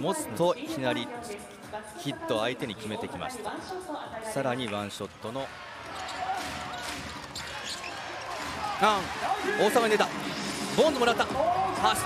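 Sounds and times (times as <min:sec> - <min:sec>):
crowd voices: 0:05.2 - 0:12.0.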